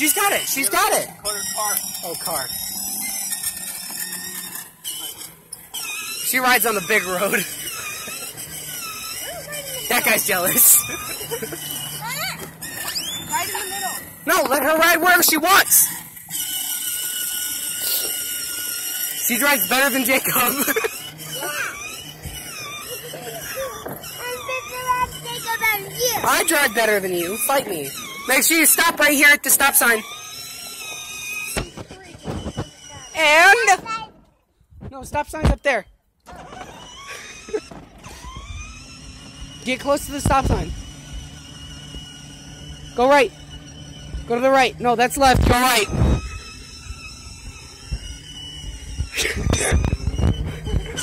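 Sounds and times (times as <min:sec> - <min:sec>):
toy car electric motor whining: 0:00.0 - 0:34.3, 0:35.0 - 0:51.0
plastic wheels rolling on asphalt: 0:00.0 - 0:51.0.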